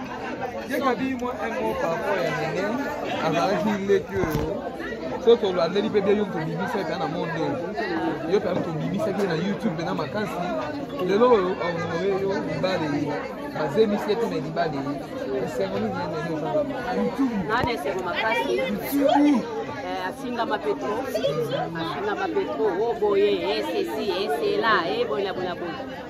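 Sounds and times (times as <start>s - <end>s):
several people talking: 0.0s - 26.0s.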